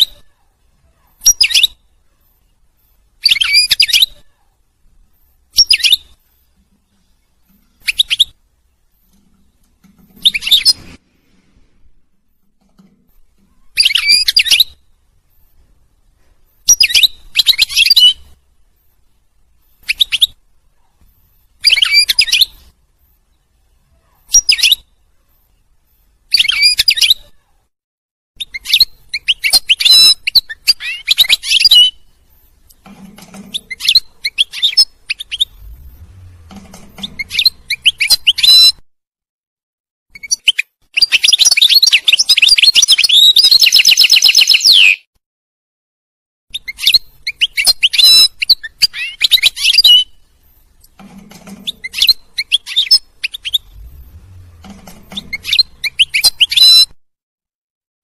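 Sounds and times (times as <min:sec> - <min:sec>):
goldfinch twittering and trills: 0:36.5 - 0:38.7, 0:54.6 - 0:56.9.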